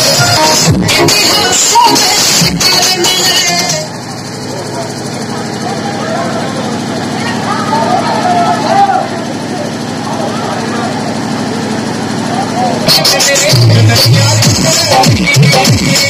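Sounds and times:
motor running steadily: 0.2 - 15.1
people talking: 3.6 - 15.1.

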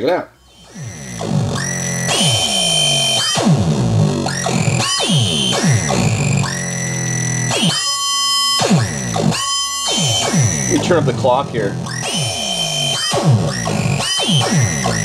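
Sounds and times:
shrill buzzy tones: 0.0 - 15.0
glitchy synth beat: 0.4 - 15.0.

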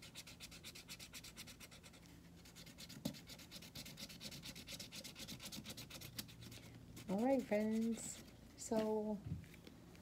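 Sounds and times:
marker scribbling on cardboard: 0.0 - 8.3.

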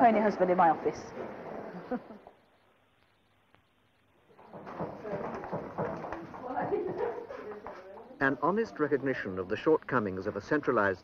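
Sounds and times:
hubbub of many people talking: 4.5 - 11.0.

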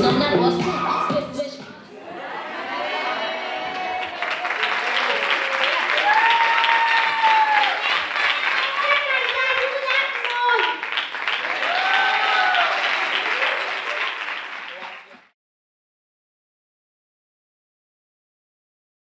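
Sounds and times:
high-pitched cheering shouts: 2.2 - 10.8, 11.4 - 14.2
audience clapping: 3.5 - 15.4.

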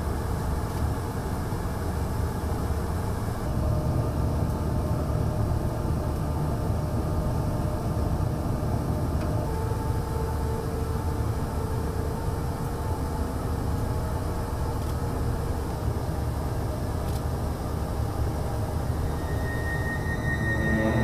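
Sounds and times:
aircraft airflow and engine rumble: 0.0 - 21.0.

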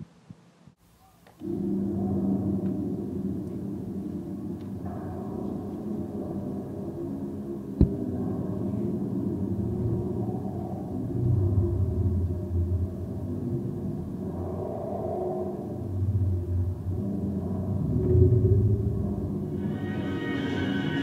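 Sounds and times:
low droning rumble: 1.4 - 21.0.

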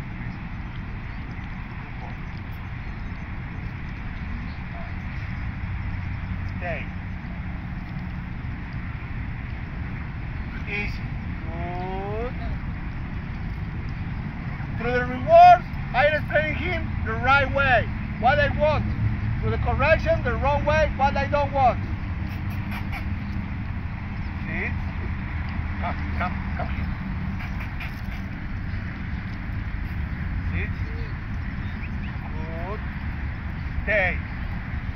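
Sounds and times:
low outdoor rumble: 0.0 - 34.9
short pitched calls: 22.0 - 23.6, 25.8 - 28.9.

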